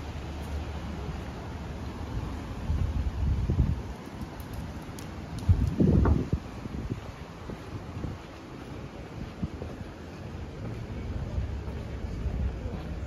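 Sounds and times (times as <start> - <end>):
outdoor background noise: 0.0 - 13.0
wind buffeting microphone: 2.1 - 13.0.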